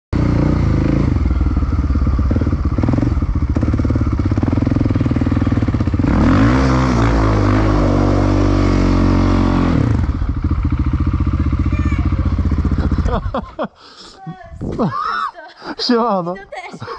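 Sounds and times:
quad engine revving: 0:00.2 - 0:13.6.

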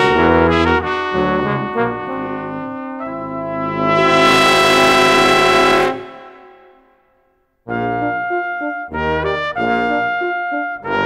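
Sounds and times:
brass chord sustained: 0:00.0 - 0:07.0
room reverberation ringing: 0:02.1 - 0:07.4.

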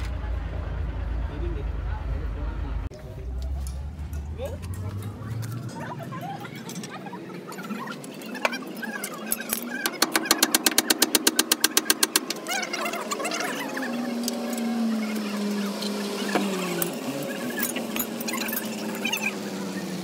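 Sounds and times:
engine drone: 0:00.0 - 0:20.0
rapid sharp metallic clicks: 0:09.4 - 0:12.5.

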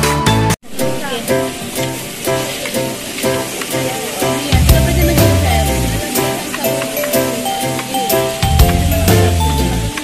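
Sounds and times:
background music: 0:00.0 - 0:10.0
meat sizzling on a grill: 0:00.8 - 0:10.0.

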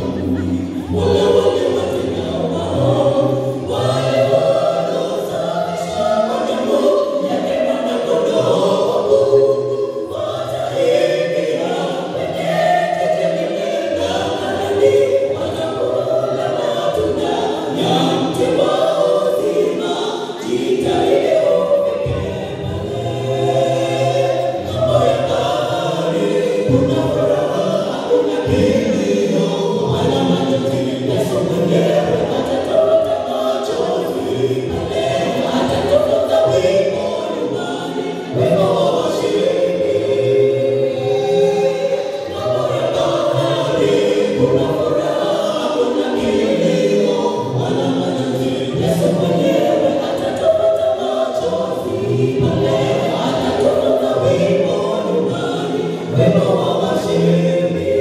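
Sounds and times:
vocal group singing in harmony: 0:00.0 - 0:58.0.

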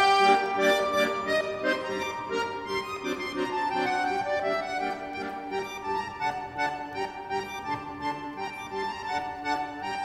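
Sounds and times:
accordion music: 0:00.0 - 0:10.0.

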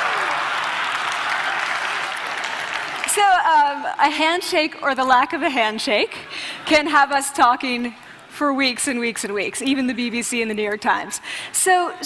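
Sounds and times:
audience applauding: 0:00.0 - 0:03.6.

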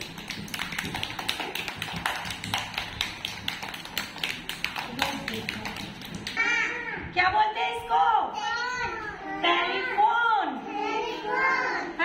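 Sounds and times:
children clapping: 0:00.0 - 0:06.4.

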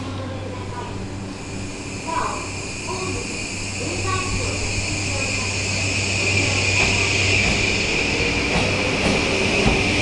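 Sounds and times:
high-pitched ring: 0:01.4 - 0:08.2
train wheels on rails: 0:01.4 - 0:10.0.

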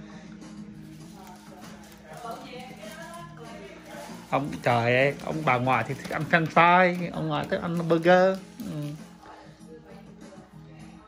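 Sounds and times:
faint voices: 0:00.9 - 0:11.0.

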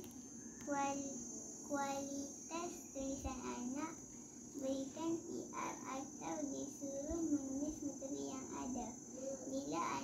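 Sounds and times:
girl reading aloud in chant: 0:00.7 - 0:04.0, 0:04.6 - 0:10.0.

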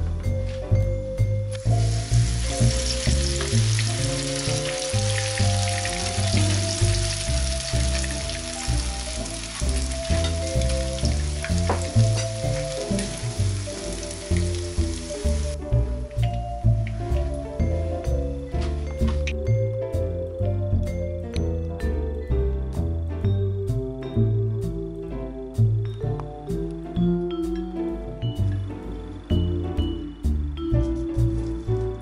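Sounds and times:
background music: 0:00.0 - 0:32.0
hot oil sizzling in a pan: 0:01.5 - 0:15.6.

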